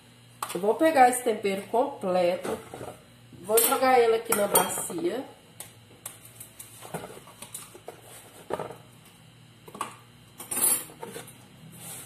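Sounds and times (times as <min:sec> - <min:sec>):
rustling scrape: 0:11.1 - 0:12.0.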